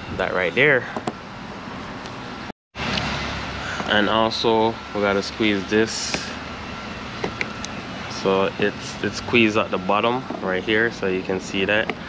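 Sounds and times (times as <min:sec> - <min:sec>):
workshop background noise: 0:00.6 - 0:12.0.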